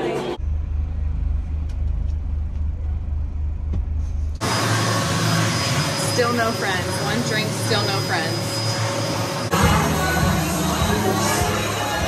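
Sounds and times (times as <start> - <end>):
vehicle rumble from inside: 0.4 - 4.4
people chattering: 9.5 - 12.0.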